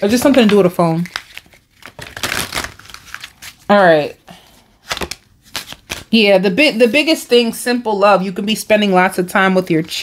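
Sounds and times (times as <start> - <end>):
cards rustling and crinkling: 0.0 - 3.9, 4.5 - 6.3.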